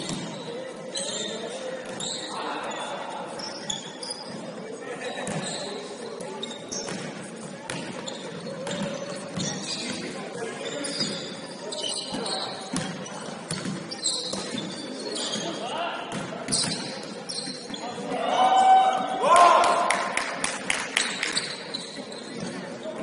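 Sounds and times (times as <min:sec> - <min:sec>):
sneaker squeaks: 0:00.0 - 0:19.2, 0:20.9 - 0:23.0.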